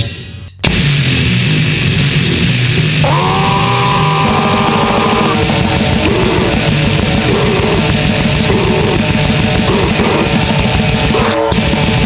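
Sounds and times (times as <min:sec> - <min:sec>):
grindcore band playing distorted music: 0:00.0 - 0:12.0.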